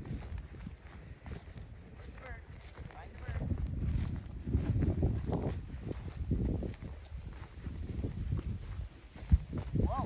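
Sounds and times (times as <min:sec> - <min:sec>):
footsteps through grass: 0:00.0 - 0:10.0.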